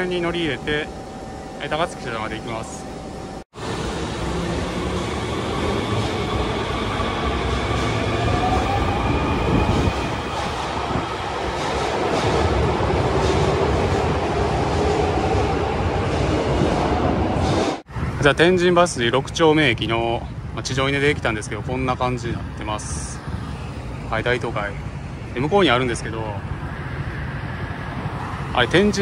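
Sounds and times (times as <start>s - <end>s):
subway train motor whine: 0.0s - 18.2s
wheels rumbling on rail: 0.0s - 29.0s.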